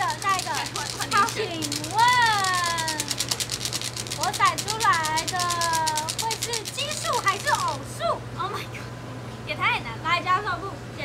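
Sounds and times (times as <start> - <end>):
dice rattling in metal cup: 0.0 - 7.8.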